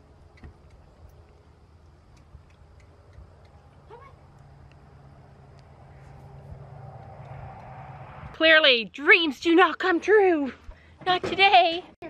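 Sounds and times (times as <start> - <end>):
faint ticks: 0.3 - 4.8.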